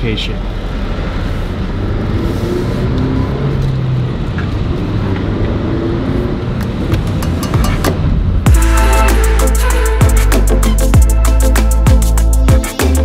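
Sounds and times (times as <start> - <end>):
road noise: 0.0 - 12.5.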